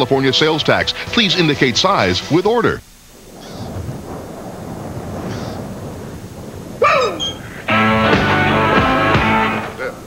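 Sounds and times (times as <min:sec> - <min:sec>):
low steady rumble: 0:02.6 - 0:10.0.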